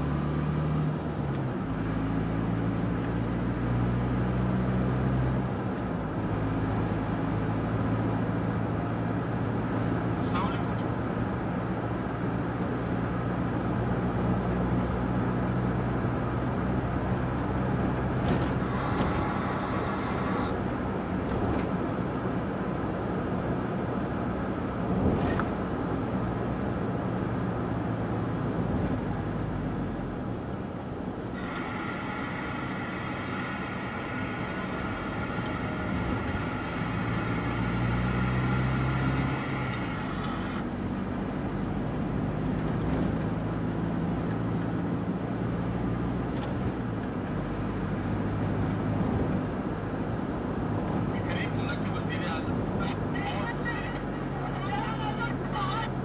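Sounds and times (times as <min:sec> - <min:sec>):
car engine hum: 0:00.0 - 0:56.0
road and tyre noise: 0:00.0 - 0:56.0
higher steady hum: 0:31.3 - 0:40.7.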